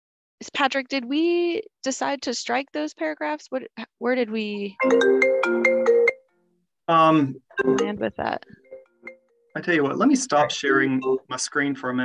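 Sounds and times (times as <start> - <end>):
phone ringtone chiming melody: 4.8 - 6.3, 7.6 - 9.6.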